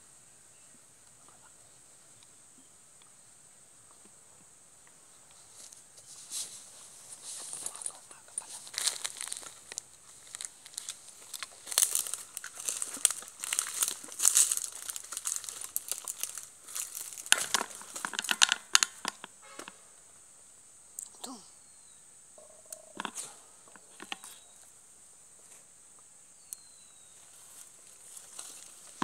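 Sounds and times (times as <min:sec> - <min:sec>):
footsteps crunching through dry leaves: 0:05.4 - 0:18.4, 0:27.2 - 0:29.0
sticks snapping: 0:08.7 - 0:19.3.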